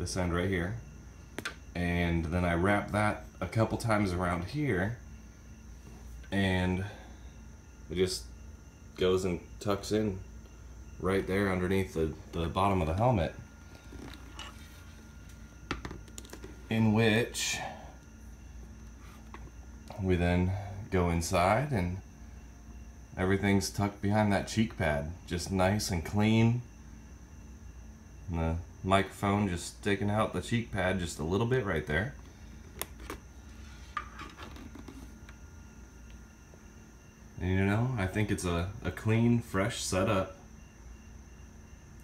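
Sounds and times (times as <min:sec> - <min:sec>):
low room hum: 0:00.0 - 0:42.0
light rubbing of helmet and cable: 0:13.7 - 0:16.6, 0:32.7 - 0:35.4.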